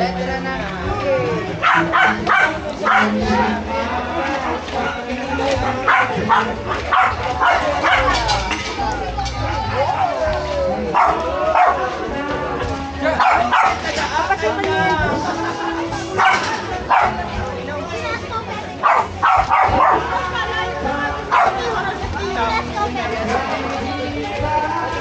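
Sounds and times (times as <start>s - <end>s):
background music: 0.0s - 25.0s
people talking: 0.0s - 25.0s
dog barking: 1.6s - 3.2s, 5.8s - 8.3s, 10.9s - 11.8s, 13.2s - 13.8s, 16.2s - 17.2s, 18.8s - 20.1s, 21.3s - 21.6s.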